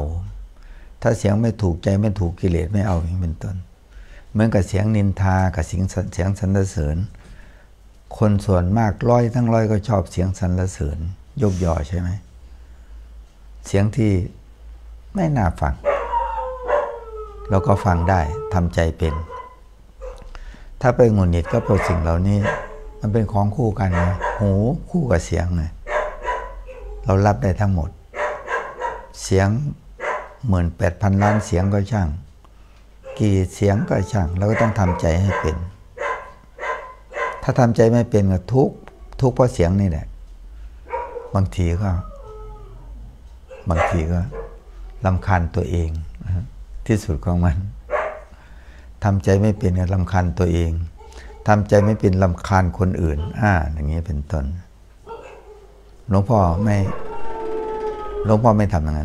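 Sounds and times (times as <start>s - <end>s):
person speaking: 1.0s - 3.7s, 8.1s - 12.4s, 15.1s - 16.2s, 17.1s - 19.5s, 20.2s - 26.1s, 27.0s - 28.0s, 30.4s - 32.3s, 33.1s - 35.8s, 43.6s - 47.8s, 49.0s - 54.7s, 56.1s - 59.0s
dog howling: 15.6s - 20.3s, 21.0s - 29.3s, 31.0s - 31.8s, 33.0s - 37.6s, 40.9s - 45.6s, 51.0s - 52.2s, 55.1s - 59.0s
man's voice: 17.5s - 19.3s, 20.8s - 25.8s, 30.4s - 32.2s, 33.1s - 35.7s, 43.7s - 44.4s, 51.5s - 54.6s, 56.1s - 59.0s.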